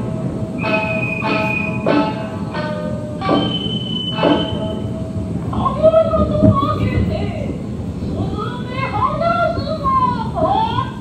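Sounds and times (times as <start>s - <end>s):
long held high tones: 0.0s - 5.8s.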